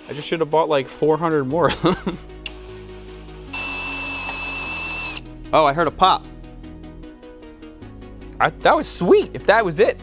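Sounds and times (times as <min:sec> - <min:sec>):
drill motor whining: 0:00.0 - 0:00.3, 0:02.5 - 0:05.2
drill cutting metal squealing: 0:00.0 - 0:00.4, 0:02.5 - 0:05.2.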